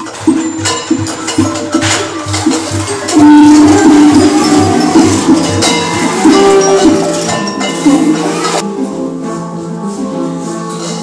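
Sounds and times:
shakers rattling: 0.0 - 8.6
children playing drums: 0.0 - 11.0.

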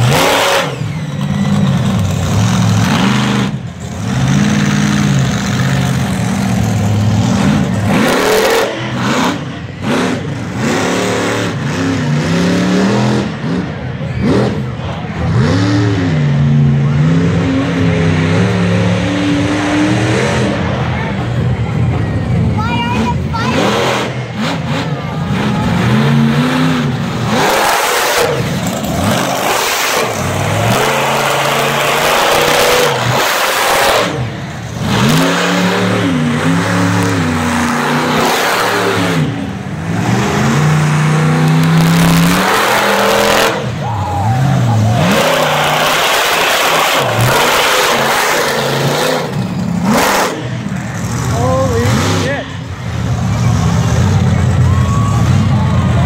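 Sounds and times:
truck engine revving: 0.0 - 56.0.

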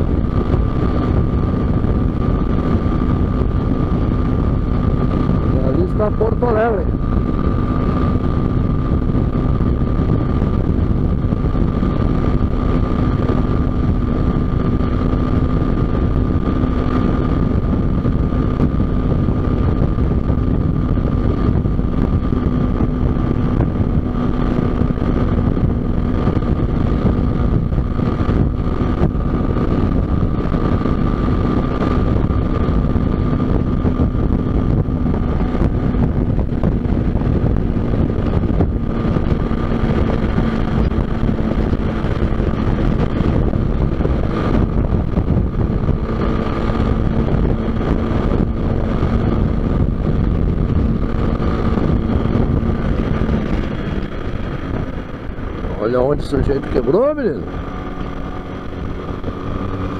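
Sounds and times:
engine drone: 0.0 - 59.9
wind rumble on microphone: 0.0 - 59.9.

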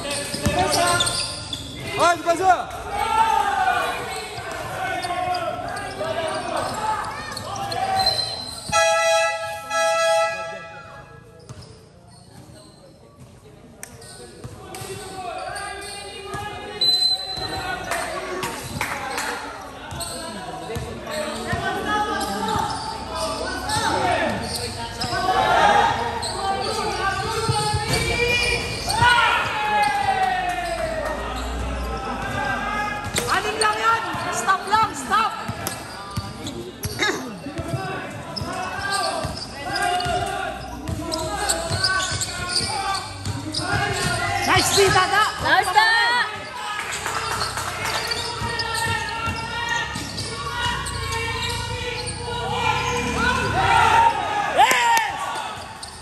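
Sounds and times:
players and spectators calling out: 0.0 - 56.0
basketball bouncing on court: 39.2 - 46.5, 47.3 - 51.0.

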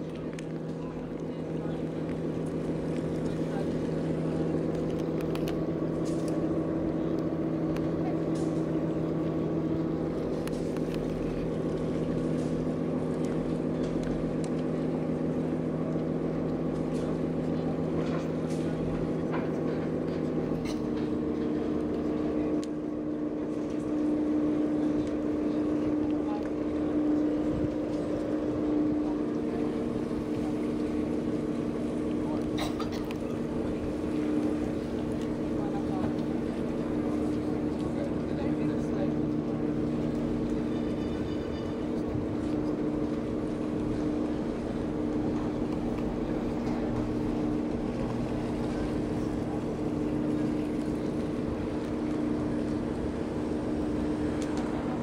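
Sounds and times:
boat engine humming: 0.0 - 55.0.

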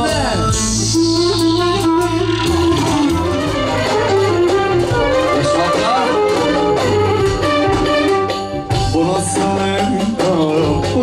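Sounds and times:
wind instrument melody: 0.0 - 10.3
keyboard bass notes: 0.0 - 11.0.

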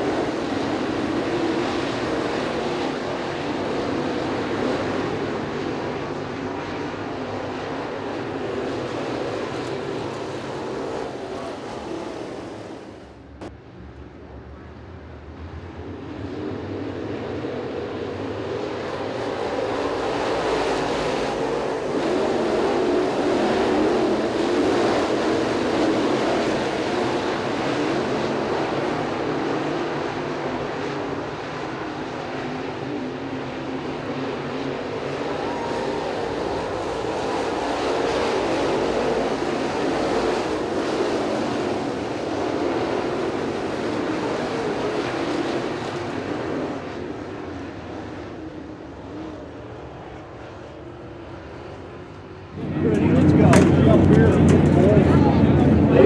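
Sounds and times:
race car engines: 0.0 - 56.0
voices: 52.6 - 56.0.

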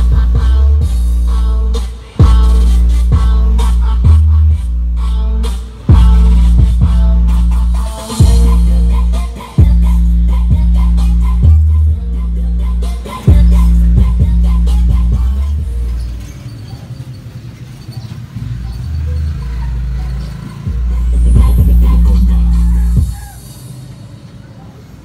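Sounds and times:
music with deep bass through speakers: 0.0 - 16.4, 18.4 - 24.2.

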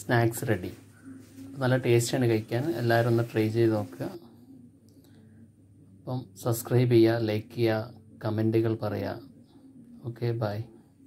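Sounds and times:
person speaking: 0.0 - 4.5.

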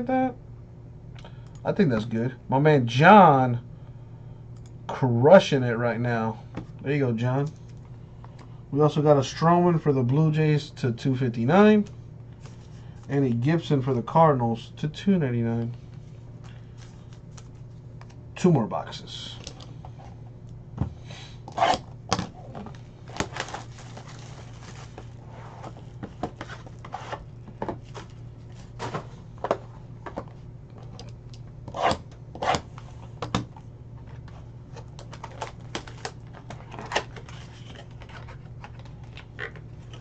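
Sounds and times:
steady low hum: 0.0 - 40.0
card pack wrappers crinkling and tearing: 22.6 - 25.2
cards clicking and rustling: 34.0 - 40.0.

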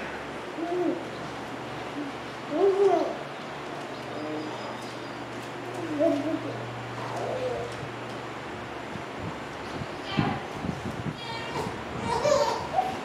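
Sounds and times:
steady low hum: 0.0 - 13.0
dove cooing: 0.5 - 1.2, 5.7 - 8.0.

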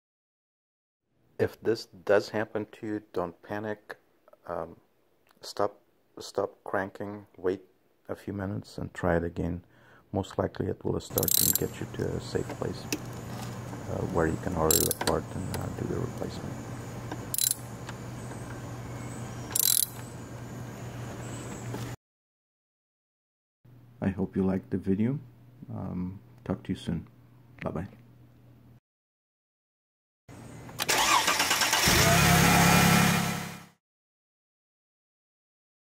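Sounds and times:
ratchet wrench clicking: 11.1 - 11.8, 14.7 - 15.1, 17.3 - 17.6, 19.5 - 20.0
steady low hum: 11.1 - 22.0.

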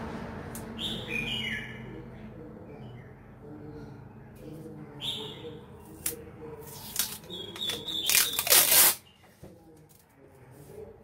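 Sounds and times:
packing tape tearing off roll: 6.8 - 9.0.

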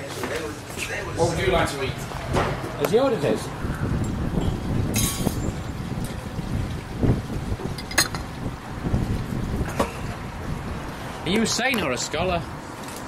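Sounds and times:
wind buffeting microphone: 0.9 - 11.4.

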